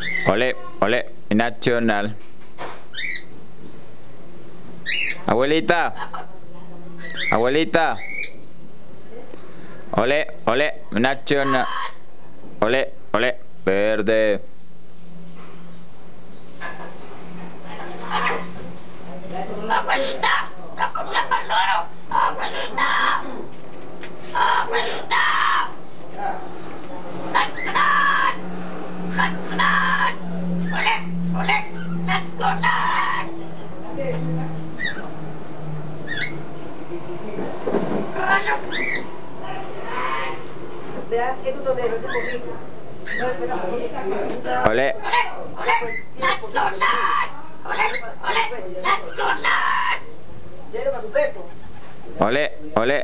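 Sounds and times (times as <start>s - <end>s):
parrot squawking: 0.0s - 0.7s, 2.9s - 3.4s, 4.8s - 6.3s, 7.0s - 8.4s, 11.2s - 12.1s, 17.8s - 18.6s, 19.6s - 23.4s, 24.3s - 25.8s, 27.2s - 33.9s, 34.5s - 36.6s, 38.1s - 40.5s, 41.9s - 43.5s, 44.4s - 50.1s.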